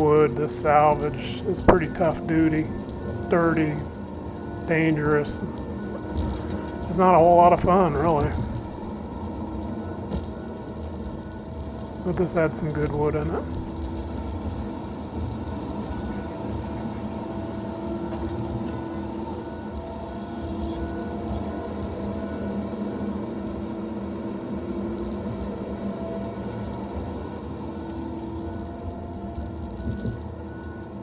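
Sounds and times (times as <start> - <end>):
low engine rumble: 0.0 - 31.0.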